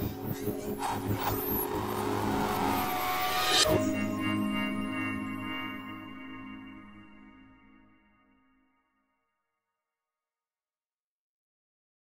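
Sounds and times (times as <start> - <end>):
low synth chord: 0.5 - 8.5
whooshing sound effect: 0.6 - 4.0
high falling tone: 0.8 - 7.4.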